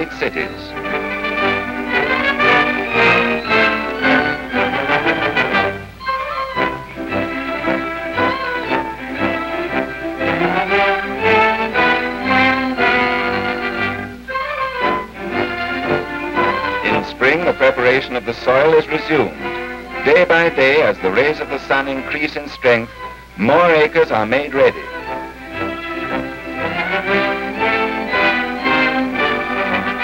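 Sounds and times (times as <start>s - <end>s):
orchestral string music: 0.0s - 30.0s.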